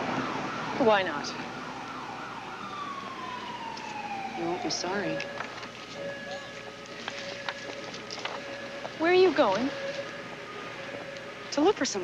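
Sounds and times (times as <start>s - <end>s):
siren wail sinking in pitch: 0.0s - 12.0s.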